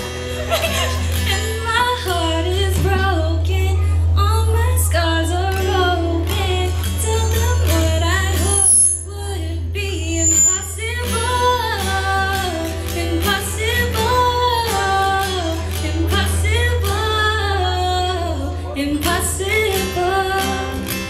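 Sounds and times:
strummed acoustic guitar: 0.0s - 21.0s.

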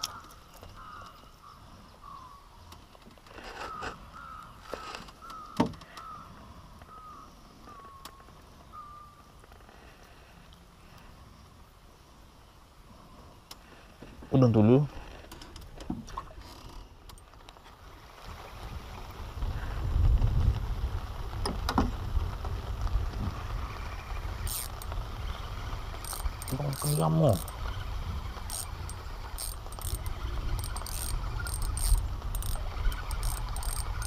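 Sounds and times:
fishing reel clicking: 24.4s - 25.0s, 26.0s - 27.6s, 28.4s - 34.0s.

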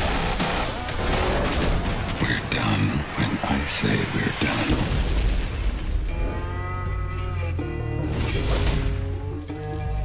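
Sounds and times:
dramatic brass trailer music: 0.0s - 9.8s.

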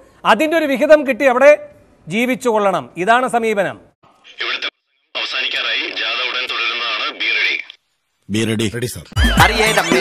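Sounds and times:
voice over walkie-talkie: 4.3s - 7.8s.

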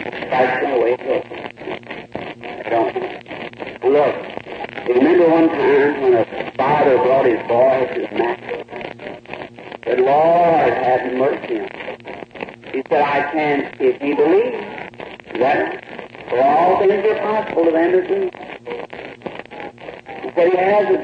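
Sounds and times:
man preaching: 4.9s - 8.5s.

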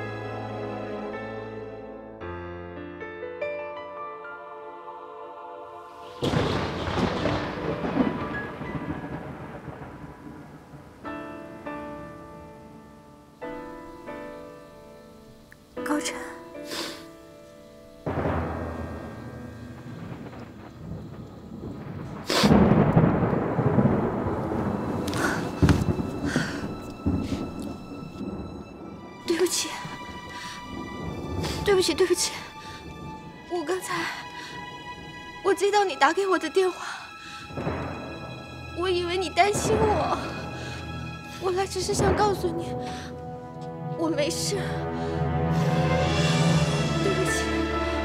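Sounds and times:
thunder crack: 6.0s - 13.8s, 18.0s - 48.0s
loud rumbling crash: 6.2s - 10.8s, 18.1s - 29.0s, 37.5s - 43.6s
sharp crackles: 18.0s - 34.5s
faint music: 22.7s - 48.0s.

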